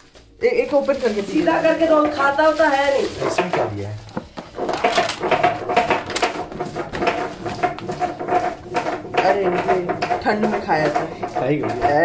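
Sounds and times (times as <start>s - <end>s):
plastic and paper crinkling: 0.0s - 12.0s.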